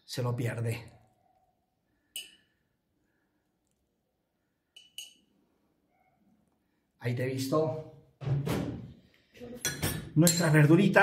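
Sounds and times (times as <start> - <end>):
metal tweezers clinking on dishware: 9.6 - 10.7.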